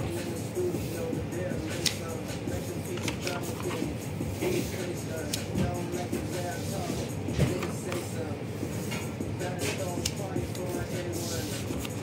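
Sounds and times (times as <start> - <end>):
paper page rustling: 2.9 - 4.7, 11.2 - 12.0.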